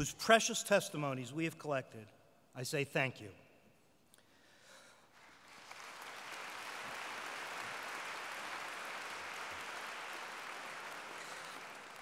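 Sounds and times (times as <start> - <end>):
audience applauding: 5.1 - 12.0.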